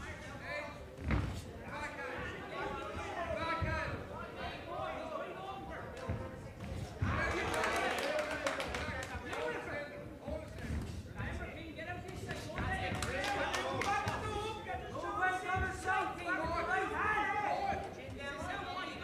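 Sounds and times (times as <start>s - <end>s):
feet on ring canvas: 0.8s - 4.1s, 8.6s - 18.4s.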